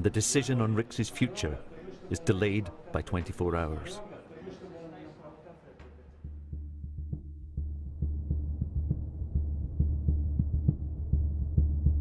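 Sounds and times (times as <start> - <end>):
low throbbing hum: 6.4 - 12.0.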